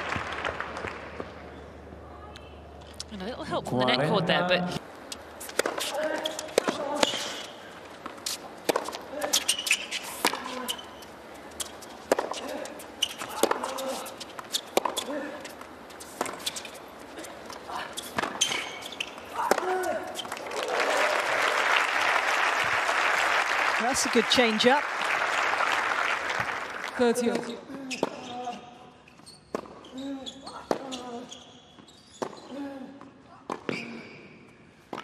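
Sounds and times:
crowd applauding: 0:00.0 - 0:01.2, 0:20.2 - 0:27.2
racket hitting tennis ball: 0:05.4 - 0:10.8, 0:11.5 - 0:16.8, 0:17.5 - 0:20.2
tennis ball bouncing: 0:05.4 - 0:16.8, 0:17.5 - 0:20.3.

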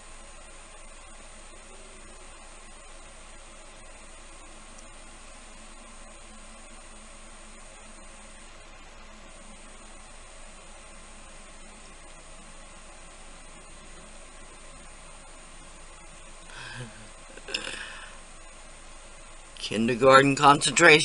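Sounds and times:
background hiss: 0:00.0 - 0:21.0
thin high whine: 0:00.0 - 0:21.0.

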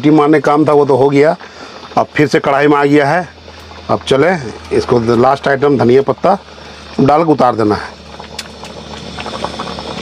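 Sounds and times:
curry bubbling and popping: 0:00.0 - 0:10.0.

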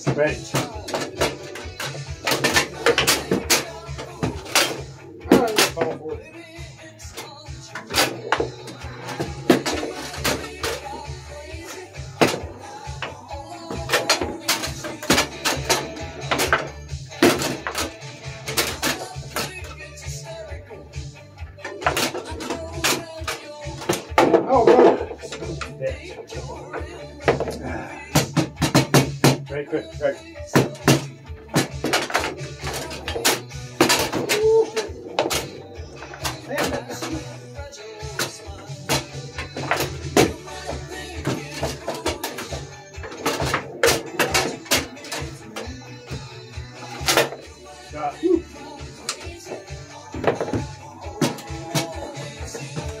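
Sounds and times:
foosball ball cracks and knocks: 0:00.0 - 0:06.0, 0:07.2 - 0:19.8, 0:21.6 - 0:25.7, 0:26.6 - 0:29.5, 0:30.5 - 0:37.4, 0:38.0 - 0:47.5, 0:49.0 - 0:53.0
background music: 0:00.0 - 0:53.0.

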